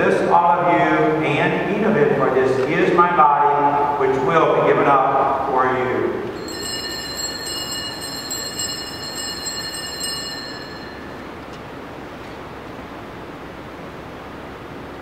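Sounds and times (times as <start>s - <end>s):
room tone hiss: 0.0s - 15.0s
small altar bells ringing: 6.4s - 11.4s.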